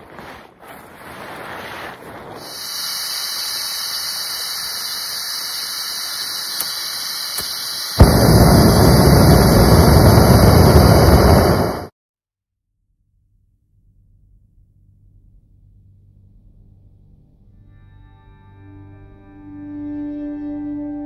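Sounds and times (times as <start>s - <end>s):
gas stove burner hissing: 2.4s - 11.9s
high-pitched gas hiss: 2.4s - 11.9s
small clicks: 6.2s - 8.0s
gas igniting pop: 6.2s - 11.9s.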